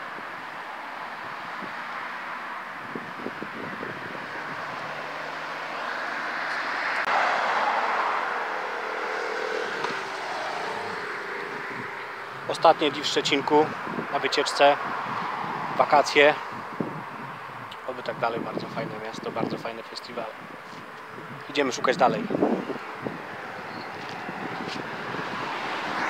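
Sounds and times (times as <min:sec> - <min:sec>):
car passing: 0:00.0 - 0:17.7, 0:20.2 - 0:26.0
road traffic engines and tyres: 0:00.0 - 0:26.0.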